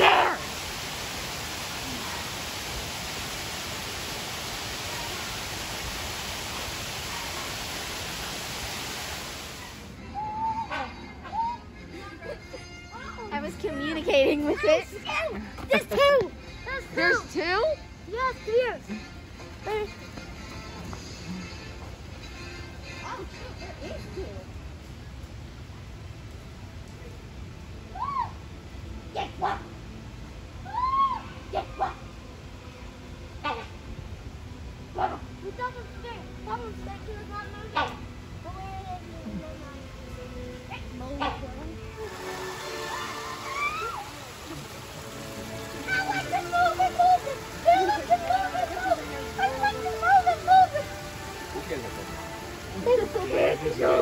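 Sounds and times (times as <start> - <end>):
hornbill calling: 0.0 - 0.6
waterfall rushing over rocks: 0.0 - 10.0, 41.9 - 54.0.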